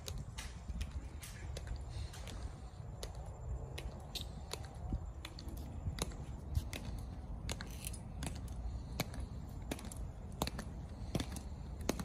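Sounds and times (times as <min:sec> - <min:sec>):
hard-soled footsteps on pavement: 0:00.0 - 0:12.0.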